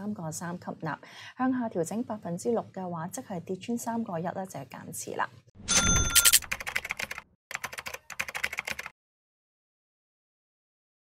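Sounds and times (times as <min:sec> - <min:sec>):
computer keyboard typing clicks: 0:06.1 - 0:08.9.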